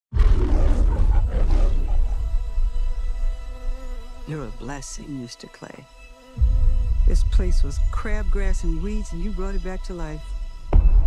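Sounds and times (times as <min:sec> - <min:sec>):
lion roaring: 0:00.1 - 0:02.8
deep low rumble: 0:00.1 - 0:03.4, 0:06.4 - 0:11.0.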